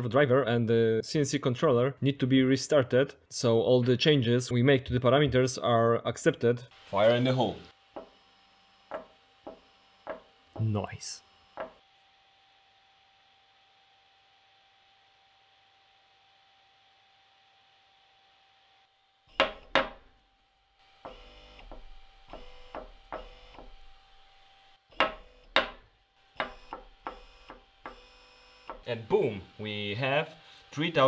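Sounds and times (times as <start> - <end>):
servo motor whine: 21.1 - 25.5, 26.2 - 31.0.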